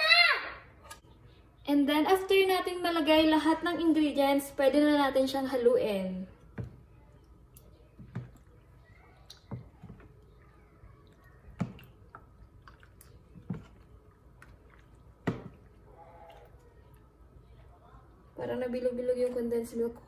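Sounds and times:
wet stirring of thick mix: 0:06.4 - 0:17.7.

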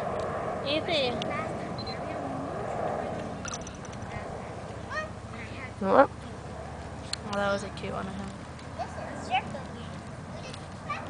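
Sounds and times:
steady hum: 0:00.0 - 0:11.0
faint voices: 0:00.7 - 0:11.0.

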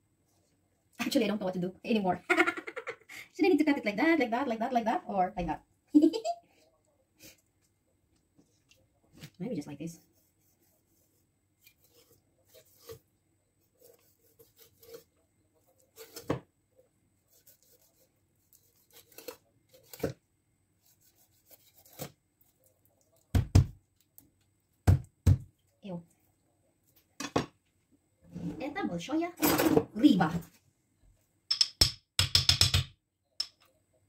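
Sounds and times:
knife slicing fish: 0:10.1 - 0:13.0, 0:13.6 - 0:15.1, 0:15.7 - 0:16.4, 0:17.3 - 0:20.2, 0:20.8 - 0:22.2.

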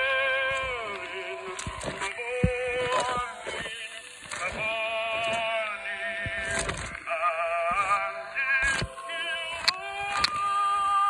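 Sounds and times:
man singing tenor with vibrato: 0:00.0 - 0:11.0
record surface clicks: 0:00.0 - 0:11.0.

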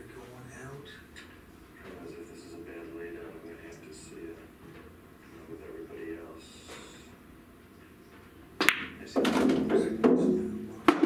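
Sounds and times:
pool balls rolling and knocking: 0:08.1 - 0:11.0
pool cue striking ball: 0:08.6 - 0:11.0.

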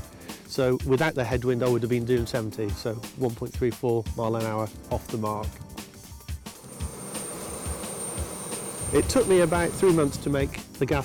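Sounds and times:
gas turbine engine rushing and whining: 0:06.5 - 0:10.6.

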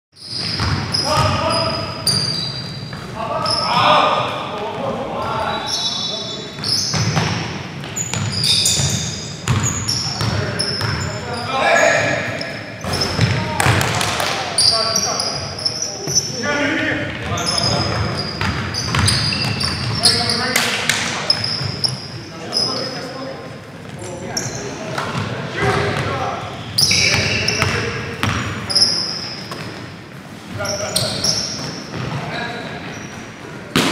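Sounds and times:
sneakers squeaking on gym floor: 0:00.2 - 0:04.3, 0:05.2 - 0:33.9
basketball bouncing: 0:00.4 - 0:01.4, 0:06.9 - 0:11.1, 0:12.8 - 0:14.4, 0:17.2 - 0:20.0, 0:27.1 - 0:28.5.

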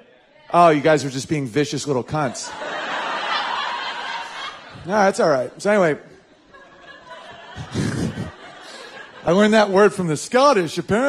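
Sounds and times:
audience laughing: 0:02.0 - 0:10.1.

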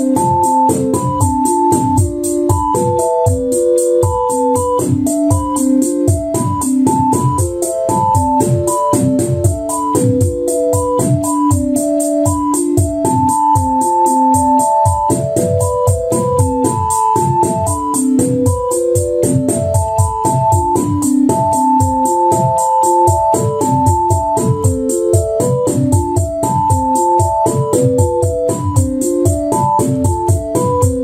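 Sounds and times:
hi-hat ticks: 0:00.0 - 0:31.0
kick and snare drums: 0:00.0 - 0:31.0
synthesizer melody: 0:00.0 - 0:31.0.

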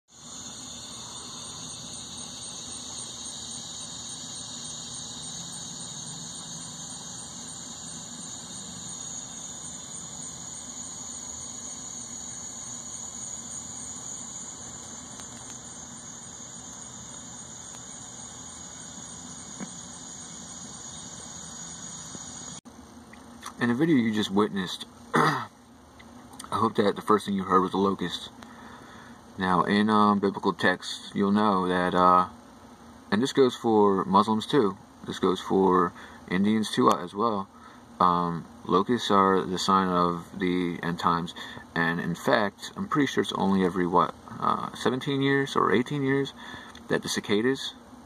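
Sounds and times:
cicadas droning: 0:00.1 - 0:48.0.

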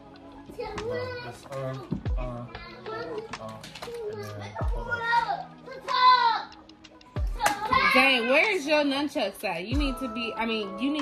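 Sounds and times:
young children talking and calling: 0:00.2 - 0:08.6.

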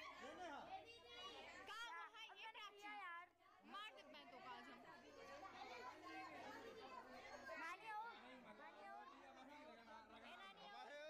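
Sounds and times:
crowd chatter: 0:00.0 - 0:00.6.

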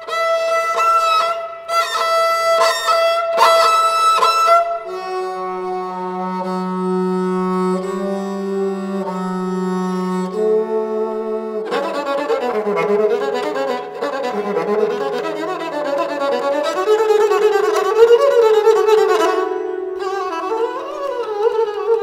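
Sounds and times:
bowed sarangi: 0:00.0 - 0:22.0.

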